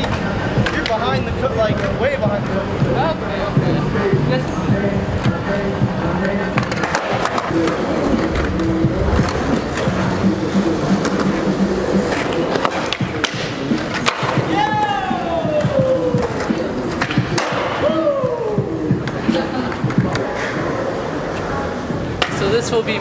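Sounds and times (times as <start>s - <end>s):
skateboard clacks and knocks: 0.0s - 3.0s, 6.1s - 20.5s
background music: 0.0s - 22.3s
skateboard wheels rolling on concrete: 0.0s - 23.0s.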